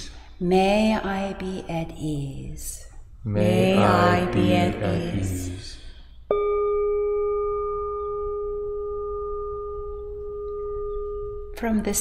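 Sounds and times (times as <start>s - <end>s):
singing bowl ringing: 6.3s - 11.6s.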